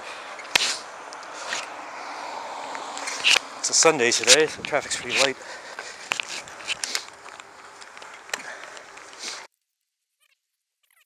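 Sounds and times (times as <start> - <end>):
passing car traffic: 0.0 - 9.5.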